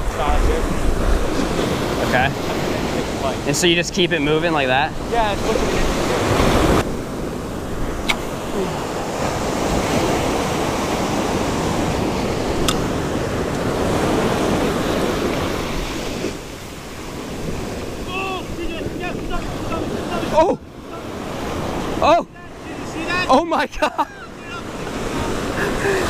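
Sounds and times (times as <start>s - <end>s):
wind buffeting microphone: 0.0s - 23.3s
ocean surf on a beach: 0.0s - 26.0s.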